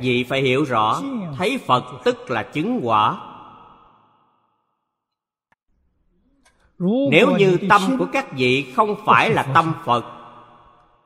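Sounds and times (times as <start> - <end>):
man speaking: 0.0 - 3.2, 6.8 - 10.1.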